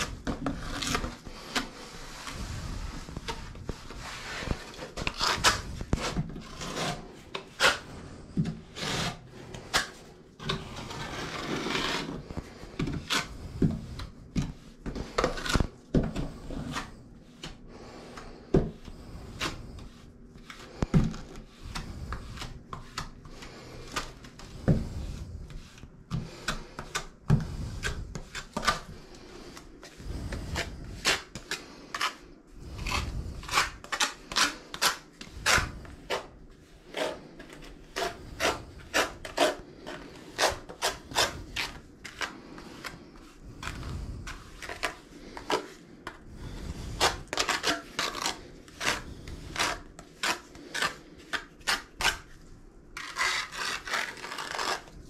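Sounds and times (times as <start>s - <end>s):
plastic spreader scraping paste: 0.0s - 55.0s.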